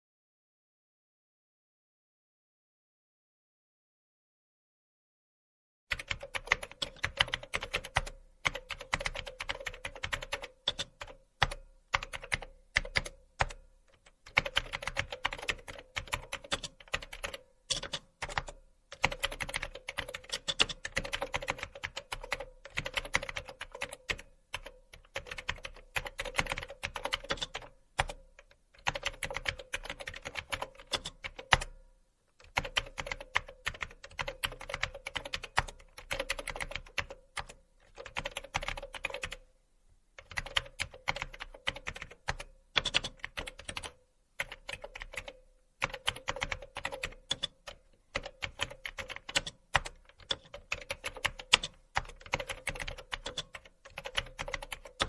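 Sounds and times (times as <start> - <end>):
typing on computer keyboard: 5.9 - 31.8, 32.4 - 39.4, 40.2 - 55.0.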